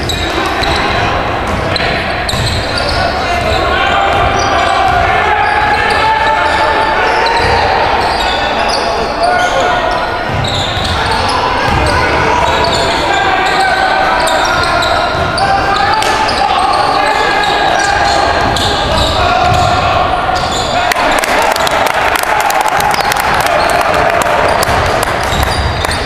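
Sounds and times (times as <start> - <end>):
sneakers squeaking on hardwood: 0.0 - 20.9, 24.4 - 26.0
hubbub of voices: 0.0 - 26.0
basketball bouncing: 1.4 - 2.6, 11.6 - 12.0, 18.4 - 19.8, 22.8 - 26.0.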